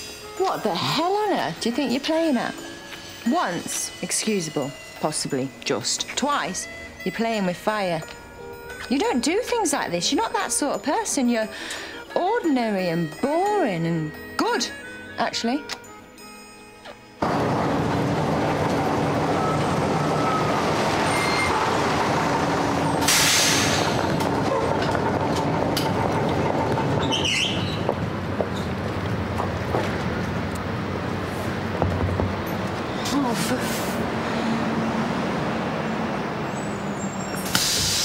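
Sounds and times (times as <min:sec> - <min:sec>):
bus diesel engines running: 0:17.0 - 0:38.0
air brake hiss: 0:23.0 - 0:24.0, 0:37.4 - 0:38.0.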